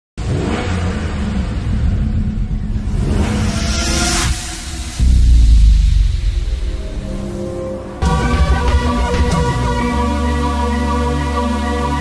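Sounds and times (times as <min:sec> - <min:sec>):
car engine revving: 0:00.2 - 0:10.3
rising whoosh: 0:02.0 - 0:09.4.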